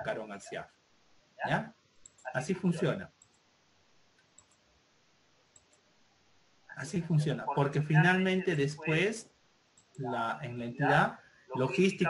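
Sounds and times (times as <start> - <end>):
computer mouse clicks: 2.0 - 2.3, 3.2 - 3.5, 4.2 - 4.7, 5.5 - 5.8, 9.8 - 10.0.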